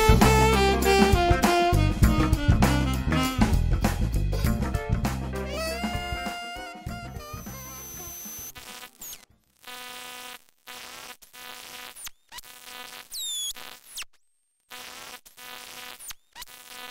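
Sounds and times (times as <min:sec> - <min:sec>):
high whine: 0:05.5 - 0:09.2
harsh electronic buzz: 0:05.6 - 0:16.9.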